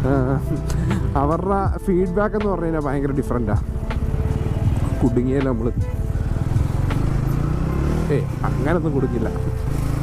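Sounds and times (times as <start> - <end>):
motorcycle engine accelerating: 3.6 - 10.0.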